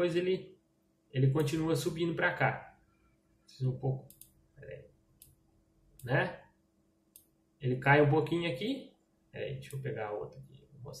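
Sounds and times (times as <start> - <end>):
computer mouse clicking: 4.0 - 4.4.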